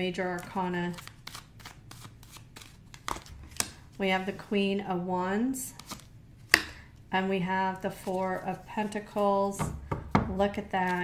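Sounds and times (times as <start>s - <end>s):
cards being shuffled: 0.2s - 4.3s, 5.7s - 6.7s.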